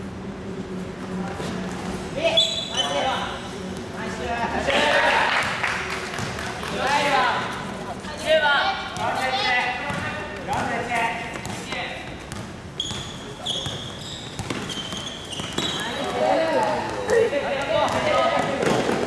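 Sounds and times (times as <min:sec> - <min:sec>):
sneaker squeaks: 0:01.4 - 0:03.9, 0:08.1 - 0:19.0
basketball dribbling on hardwood: 0:14.4 - 0:15.7.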